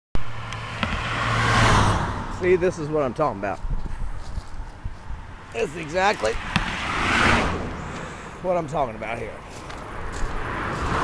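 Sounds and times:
car passing close by: 0.2s - 2.7s, 6.2s - 8.5s, 9.4s - 11.0s.

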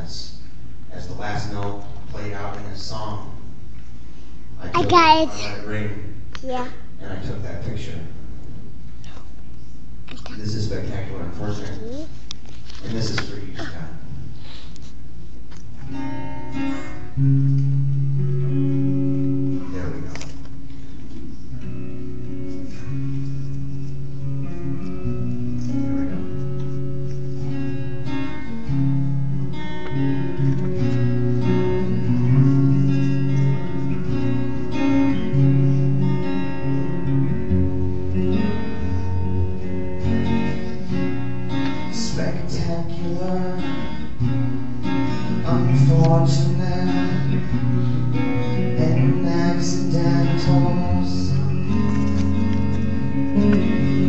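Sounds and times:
acoustic guitar chords: 15.7s - 20.7s, 21.5s - 54.0s
electric guitar chords: 15.8s - 20.7s, 21.5s - 54.0s.

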